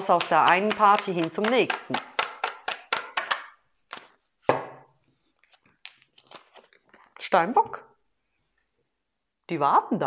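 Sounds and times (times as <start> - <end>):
cards being shuffled: 0.4 - 4.3, 5.2 - 7.1.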